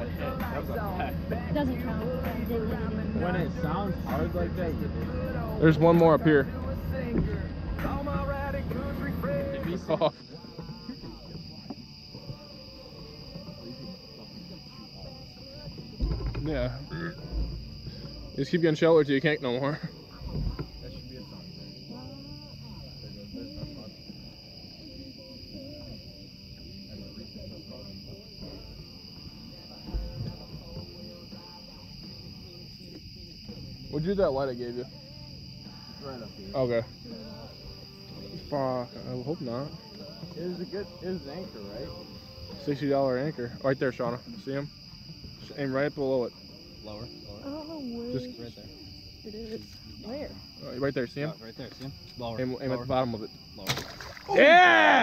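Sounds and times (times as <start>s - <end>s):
low murmuring voices or music: 0.0s - 53.6s
high-pitched night insects chorus: 0.0s - 55.0s
low thump: 16.0s - 16.6s.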